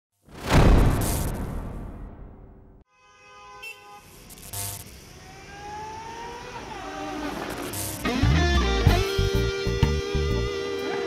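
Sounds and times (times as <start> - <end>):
whoosh: 0.3 - 2.8.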